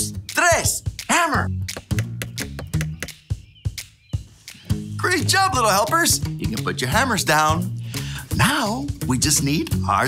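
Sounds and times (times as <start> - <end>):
children's music with bass line: 0.0 - 10.0.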